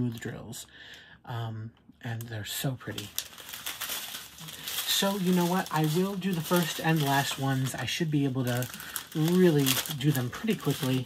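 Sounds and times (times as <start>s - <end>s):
plastic bags crinkling: 2.5s - 11.0s.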